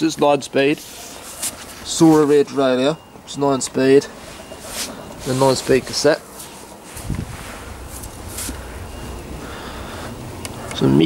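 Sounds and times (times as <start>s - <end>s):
microphone handling rustle: 4.3s - 8.7s
wind rumble on microphone: 7.0s - 7.9s.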